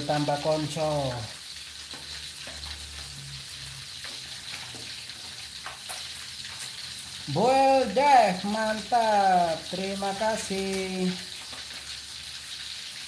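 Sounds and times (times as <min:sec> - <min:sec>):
fish deep-frying in hot oil: 0:00.0 - 0:13.0.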